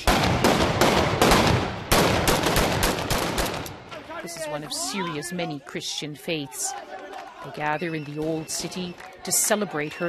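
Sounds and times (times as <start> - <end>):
rapid gunfire: 0.0 - 3.7.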